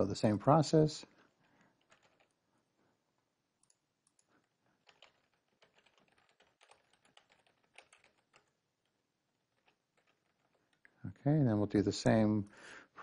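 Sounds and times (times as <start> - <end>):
typing on computer keyboard: 1.8 - 2.4, 3.6 - 10.9.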